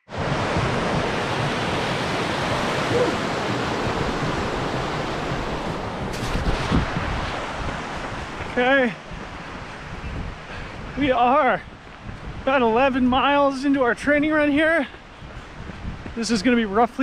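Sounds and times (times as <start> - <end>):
fast-flowing creek rushing: 0.0 - 11.8
wind buffeting microphone: 0.1 - 17.0.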